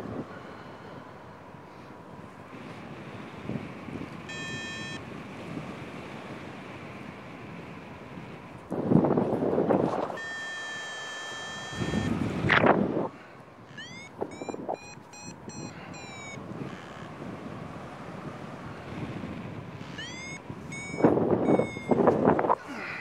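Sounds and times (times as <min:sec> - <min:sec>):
wind gusts on microphone: 0:00.0 - 0:23.0
variometer beeping: 0:03.5 - 0:05.5, 0:09.6 - 0:22.5.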